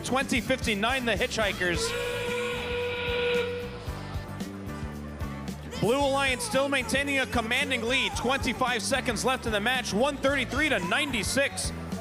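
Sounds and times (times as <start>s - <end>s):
steam whistle blast: 1.8s - 3.9s.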